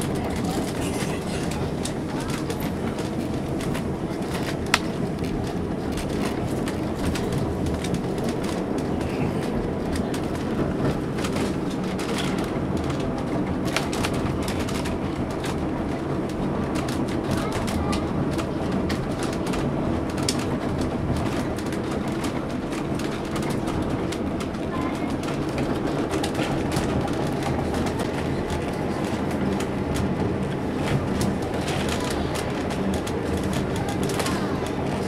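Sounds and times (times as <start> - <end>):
train rumbling along track: 0.0 - 35.0
wheels clicking over rails: 0.0 - 35.0.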